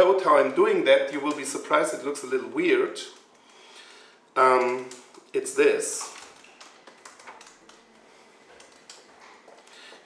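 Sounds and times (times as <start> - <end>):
keyboard typing clicks: 6.0 - 9.8.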